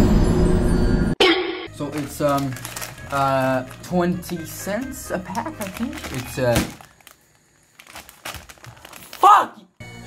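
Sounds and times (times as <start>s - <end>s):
plastic packet crinkling: 1.8s - 9.2s.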